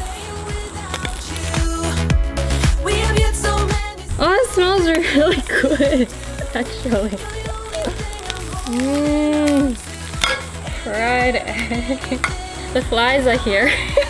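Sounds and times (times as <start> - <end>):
egg sizzling on hot metal: 0.0 - 2.1, 4.2 - 14.0
pop music with singing: 0.0 - 14.0.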